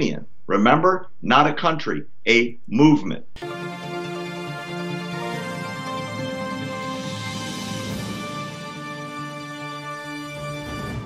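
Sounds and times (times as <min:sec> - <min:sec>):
news theme music chords: 0:03.4 - 0:11.0.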